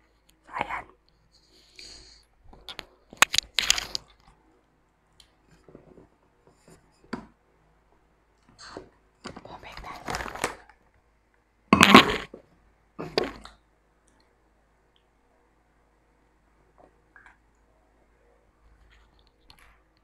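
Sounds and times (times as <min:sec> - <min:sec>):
plastic snack bag crinkling: 0:03.2 - 0:04.3, 0:09.8 - 0:10.8.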